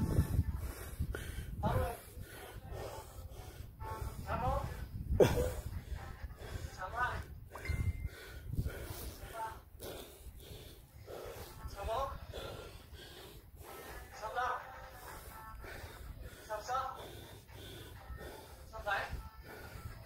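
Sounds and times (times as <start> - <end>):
hard breathing: 0.0 - 20.0.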